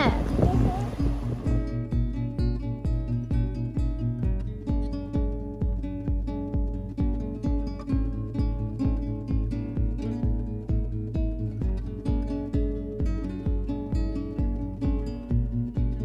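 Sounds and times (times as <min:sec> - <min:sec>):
steady beat: 0:00.0 - 0:16.0
strummed acoustic guitar: 0:00.0 - 0:16.0.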